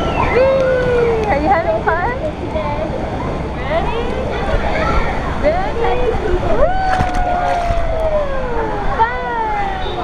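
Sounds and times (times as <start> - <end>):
rushing water: 4.3 - 9.2.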